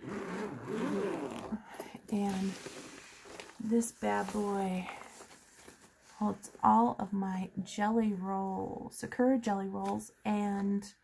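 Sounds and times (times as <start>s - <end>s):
zipper on pencil case: 0.0s - 5.1s.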